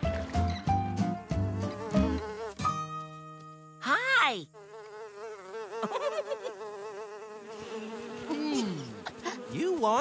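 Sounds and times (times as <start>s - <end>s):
cartoon bee buzzing: 1.0s - 3.1s, 3.8s - 10.0s.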